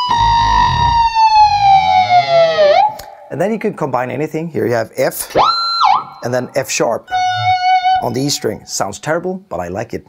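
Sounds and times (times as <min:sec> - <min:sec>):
distorted electric guitar dissonance: 0:00.0 - 0:03.3, 0:07.1 - 0:08.6.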